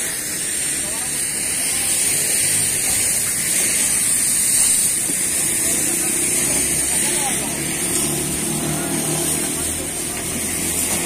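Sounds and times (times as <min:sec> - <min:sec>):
constant high hiss: 0:00.0 - 0:11.0
voices talking: 0:05.0 - 0:11.0.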